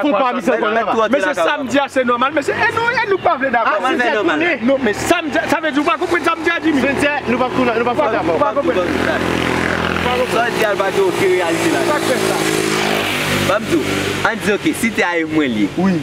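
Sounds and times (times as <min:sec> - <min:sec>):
motorcycle engine passing by: 0:03.8 - 0:14.8.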